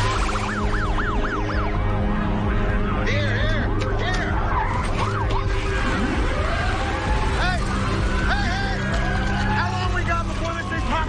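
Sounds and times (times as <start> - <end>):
wailing sirens: 0.0 - 11.0.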